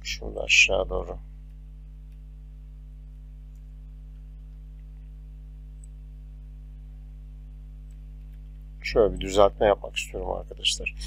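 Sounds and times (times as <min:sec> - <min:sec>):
electrical mains hum: 0:00.0 - 0:11.0
faint clicks: 0:03.5 - 0:06.0.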